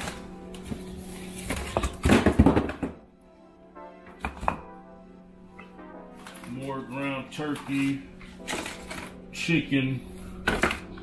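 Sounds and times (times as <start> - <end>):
frozen food packages knocking: 0.0 - 3.1.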